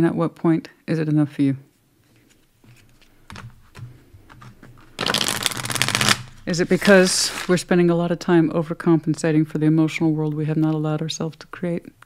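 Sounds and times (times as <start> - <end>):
soft taps of card handling: 2.0 - 4.9
cards riffle shuffled: 2.1 - 7.6.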